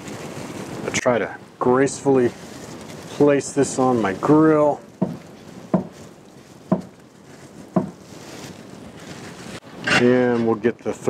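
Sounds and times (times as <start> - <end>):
plastic wrap rustling: 0.0 - 10.8.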